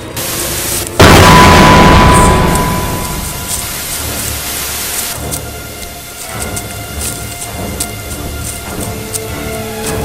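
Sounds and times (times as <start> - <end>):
droning music: 0.0 - 10.0
high crackles: 0.0 - 10.0
rumble and hiss: 0.0 - 10.0.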